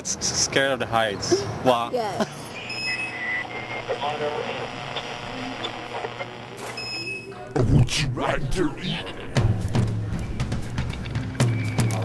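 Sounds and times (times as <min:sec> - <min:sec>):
background hiss and hum: 0:00.0 - 0:07.0
faint indistinct voices: 0:03.5 - 0:11.0.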